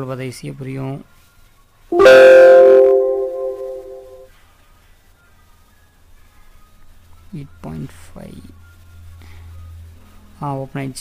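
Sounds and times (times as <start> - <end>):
computer alert chime: 2.0 - 4.3.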